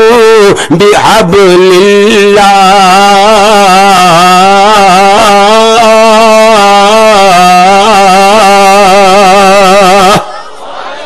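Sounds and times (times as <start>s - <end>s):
man chanting melodic recitation: 0.0s - 10.2s.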